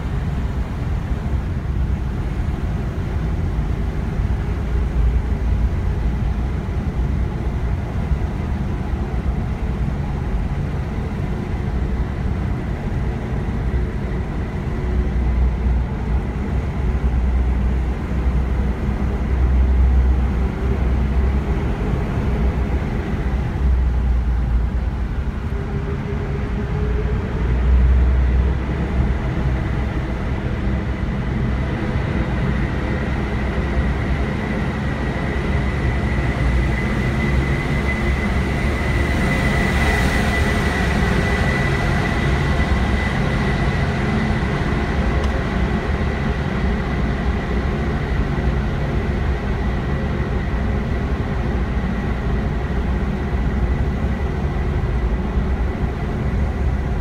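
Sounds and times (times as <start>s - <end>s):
car road and engine noise: 0.0s - 57.0s.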